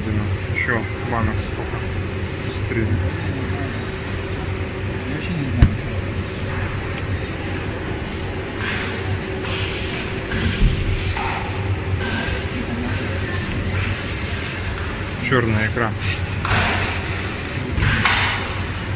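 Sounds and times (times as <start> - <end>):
steady low hum: 0.0 - 18.9
plastic bag rustling: 3.6 - 17.7.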